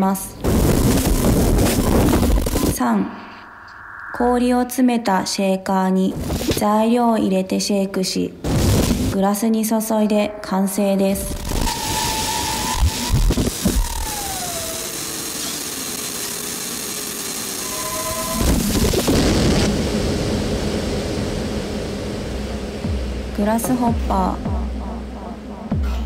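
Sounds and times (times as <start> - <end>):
sustained synth tones: 2.6 - 6.0, 9.6 - 14.8, 19.8 - 26.0
synth tone gliding down: 2.8 - 6.0, 9.8 - 14.9
deep bass: 2.9 - 5.4, 19.8 - 26.0.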